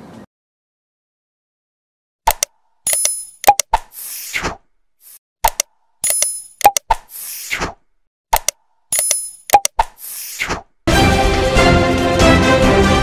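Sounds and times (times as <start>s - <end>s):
sharp clicks: 2.3s - 3.9s, 5.4s - 7.1s, 8.3s - 10.0s.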